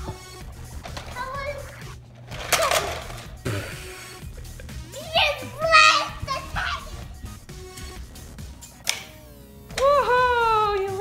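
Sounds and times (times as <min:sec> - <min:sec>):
music: 0:00.0 - 0:11.0
child exclaiming: 0:04.9 - 0:07.0.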